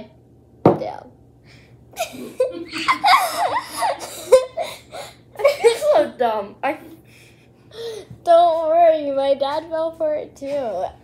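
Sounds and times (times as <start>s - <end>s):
girls laughing: 2.0s - 6.1s.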